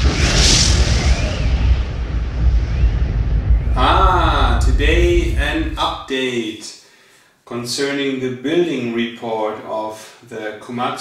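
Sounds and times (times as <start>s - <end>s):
deep steady rumble: 0.0s - 6.0s.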